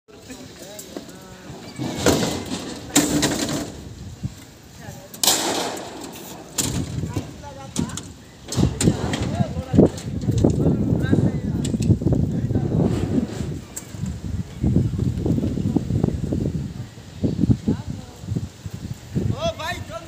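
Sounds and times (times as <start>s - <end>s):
people talking in background: 0.1s - 18.6s.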